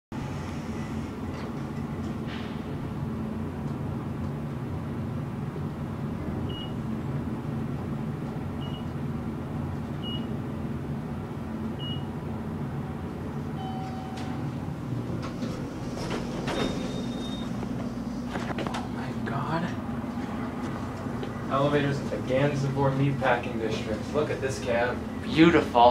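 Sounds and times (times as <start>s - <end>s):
elevator hum: 0.2s - 25.9s.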